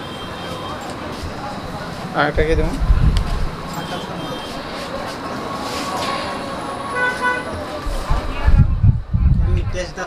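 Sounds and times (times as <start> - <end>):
street traffic noise: 0.0 - 10.0
vehicle horn honking: 6.9 - 7.6.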